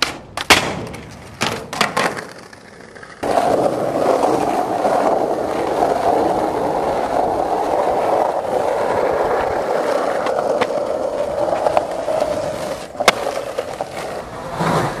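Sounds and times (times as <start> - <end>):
skateboard clacks: 0.0 - 15.0
skateboard wheels rolling on asphalt: 0.0 - 15.0.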